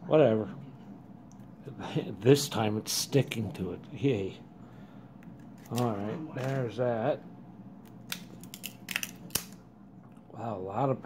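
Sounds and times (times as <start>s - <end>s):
sharp snap of cards: 7.9s - 9.6s.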